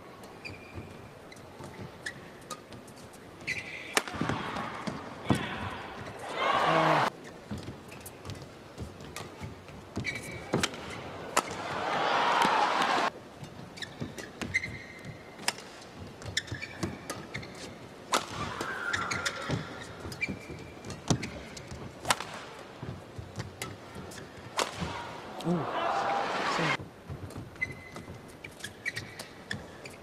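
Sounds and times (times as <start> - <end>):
shoes squeaking on court: 0.2 - 6.3, 7.0 - 11.7, 12.5 - 25.4, 26.6 - 30.0
crowd noise: 4.1 - 7.1, 10.5 - 13.1, 23.8 - 26.8
racket striking shuttlecock: 9.1 - 11.8, 15.4 - 17.5, 18.1 - 22.6, 23.4 - 25.2.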